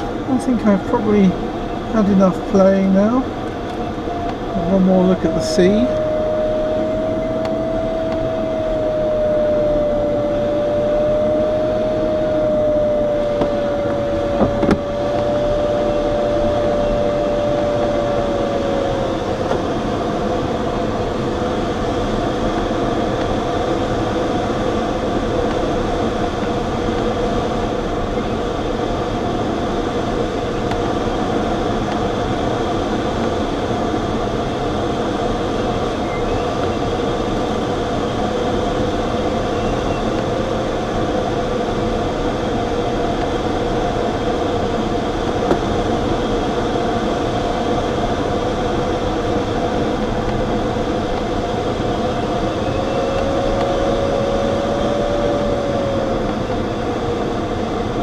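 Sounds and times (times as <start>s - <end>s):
air rushing over cockpit: 0.0s - 36.0s, 36.8s - 58.0s
variometer continuous tone: 0.0s - 58.0s.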